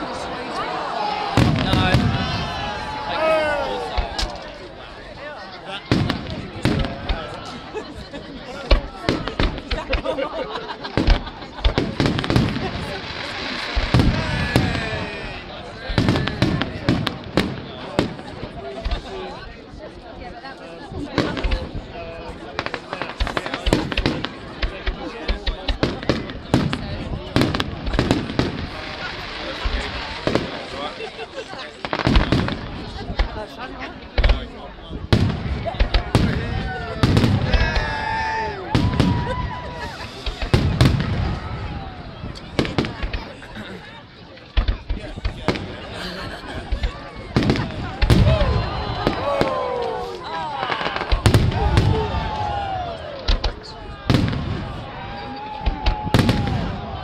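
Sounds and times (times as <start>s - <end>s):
fireworks bursting with bangs and crackles: 1.1s - 57.0s.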